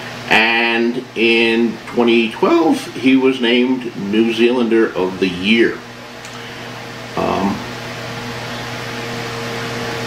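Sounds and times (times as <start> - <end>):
low even hum: 0.0 - 10.0.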